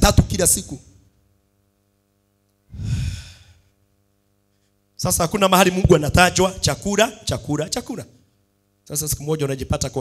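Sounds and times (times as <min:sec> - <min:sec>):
man sighing: 0:02.7 - 0:03.7.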